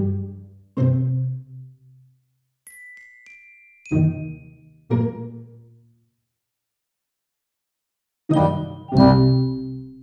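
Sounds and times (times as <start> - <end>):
bell-like chime strikes: 8.5 - 10.0.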